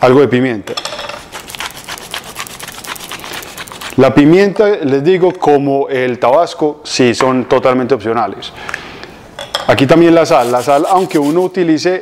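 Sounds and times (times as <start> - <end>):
pepper mill grinding: 0.8 - 4.2, 10.3 - 11.5.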